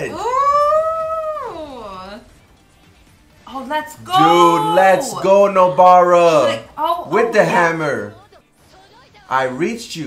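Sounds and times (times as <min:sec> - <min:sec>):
high-pitched drawn-out cry: 0:04.1 - 0:05.3.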